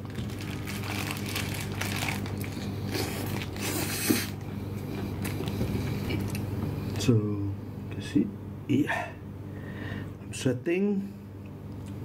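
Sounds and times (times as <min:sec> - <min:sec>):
paper wrapper rustling: 0:00.0 - 0:03.9
person chewing crunchy food: 0:00.0 - 0:06.8.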